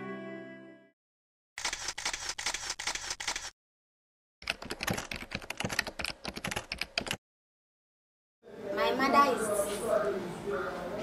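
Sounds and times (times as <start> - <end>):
rapid camera shutter clicks: 1.6 - 3.6.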